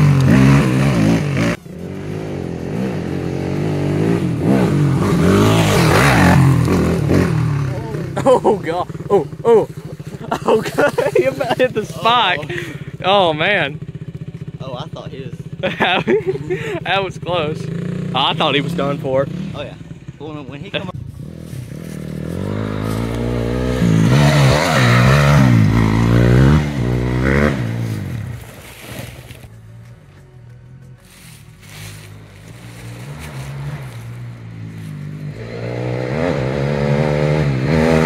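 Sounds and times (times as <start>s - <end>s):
dirt bike engine running: 0.0s - 30.1s, 30.7s - 38.0s
voices talking: 5.4s - 21.1s.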